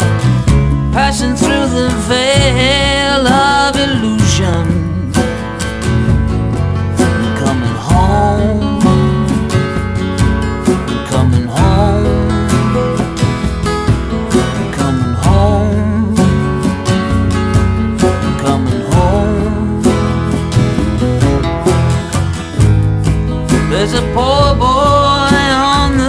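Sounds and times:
acoustic guitar strumming: 0.0s - 26.0s
steady drum beat: 0.0s - 26.0s.

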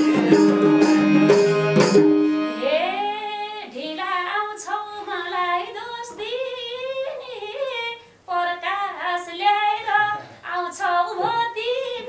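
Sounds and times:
woman singing folk song: 2.5s - 12.0s.

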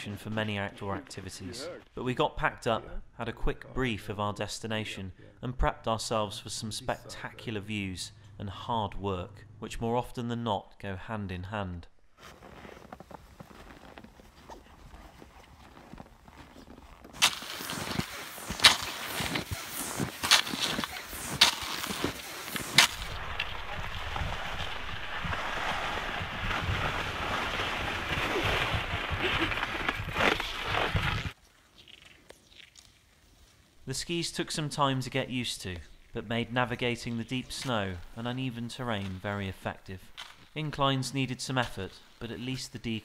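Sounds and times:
skis hissing on snow: 17.2s - 23.5s.

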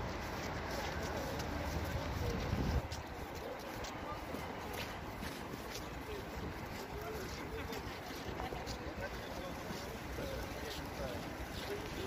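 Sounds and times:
wind rumbling on microphone: 0.0s - 3.3s
faint indistinct voices: 0.0s - 12.0s
footsteps on packed snow: 0.0s - 12.0s.

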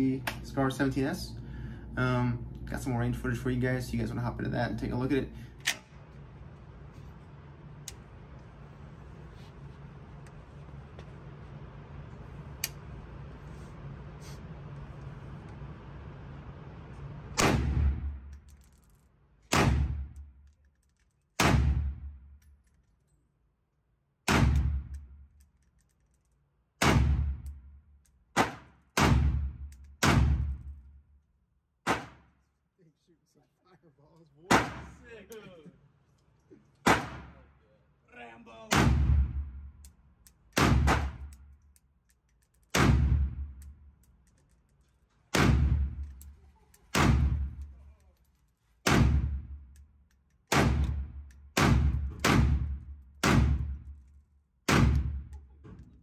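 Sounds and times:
steady background noise: 0.0s - 23.4s
rifle shots echoing indoors: 17.2s - 18.3s, 19.4s - 20.3s, 21.3s - 22.3s, 24.2s - 25.3s, 26.8s - 27.7s, 28.3s - 30.8s, 34.5s - 35.0s, 36.8s - 37.4s, 38.7s - 41.5s, 42.6s - 44.0s, 45.3s - 46.2s, 46.8s - 47.8s, 48.8s - 49.8s, 50.4s - 55.4s.

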